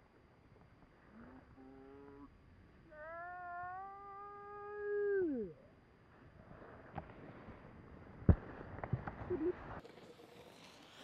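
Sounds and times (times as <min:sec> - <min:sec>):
person yelling: 0:02.9 - 0:05.5.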